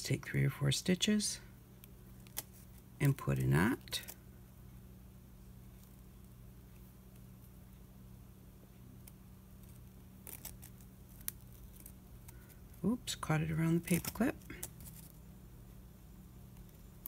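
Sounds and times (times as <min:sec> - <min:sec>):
steady low hum: 0:00.0 - 0:17.0
needle and thread rustling: 0:01.8 - 0:04.3, 0:08.8 - 0:15.3.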